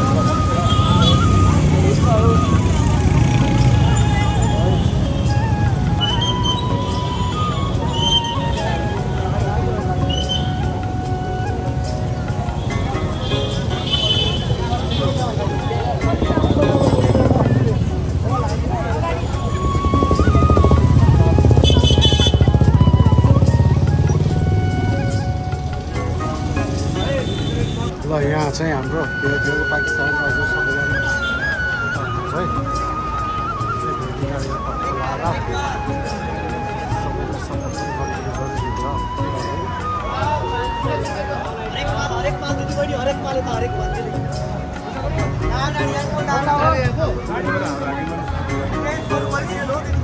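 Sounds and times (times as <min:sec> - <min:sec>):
motorbikes and cars passing: 0:00.0 - 0:38.6
music with held melody: 0:00.0 - 0:50.0
motorbike engine running: 0:19.6 - 0:24.6.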